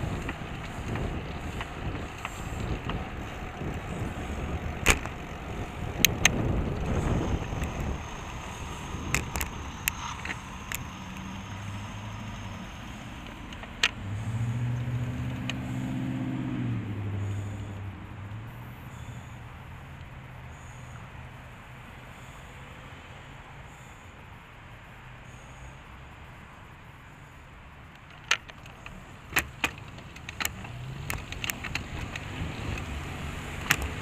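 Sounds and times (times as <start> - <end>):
sharp clicks and knocks: 0.0 - 14.0, 27.9 - 34.0
bicycle tyre and wind rumble: 0.0 - 34.0
car engine humming: 0.0 - 34.0.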